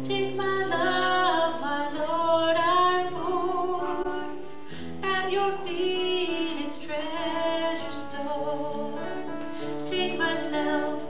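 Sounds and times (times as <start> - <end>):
acoustic guitar: 0.0 - 11.0
woman singing worship song: 0.0 - 11.0.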